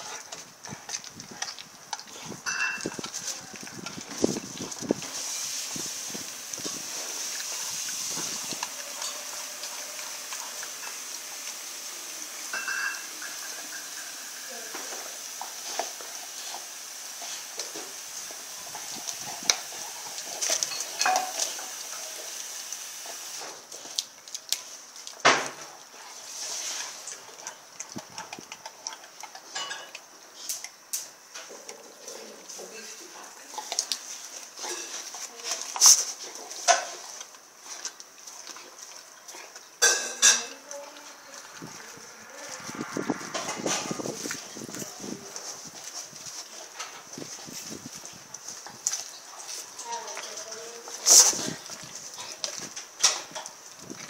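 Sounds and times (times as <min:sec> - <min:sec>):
dog chewing meat and bone: 0:00.0 - 0:54.0.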